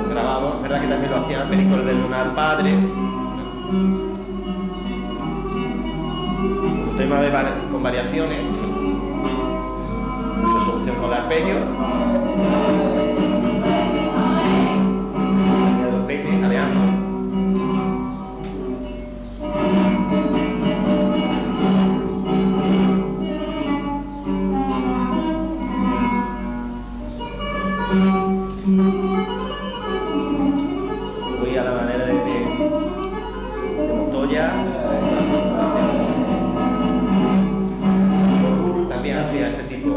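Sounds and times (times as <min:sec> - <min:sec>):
person singing flamenco: 0:00.0 - 0:18.2, 0:27.4 - 0:39.9
flamenco guitar: 0:00.0 - 0:39.9.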